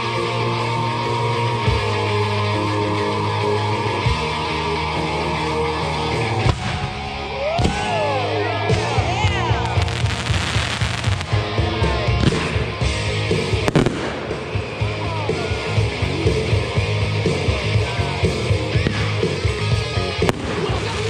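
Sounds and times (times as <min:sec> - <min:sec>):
rock music: 0:00.0 - 0:21.0
fireworks crackling: 0:05.8 - 0:21.0
fireworks popping and banging: 0:06.4 - 0:08.0, 0:08.7 - 0:15.0, 0:18.8 - 0:21.0.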